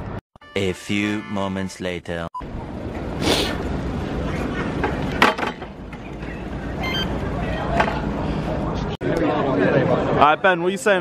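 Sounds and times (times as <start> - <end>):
street low rumble: 2.4 - 10.2.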